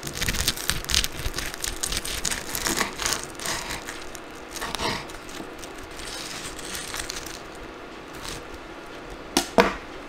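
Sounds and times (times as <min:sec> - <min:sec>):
knife sawing through crisp crust: 0:00.0 - 0:07.5.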